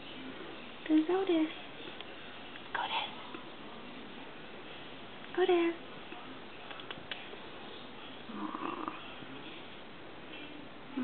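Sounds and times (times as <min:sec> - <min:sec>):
person whispering: 0:02.7 - 0:03.2.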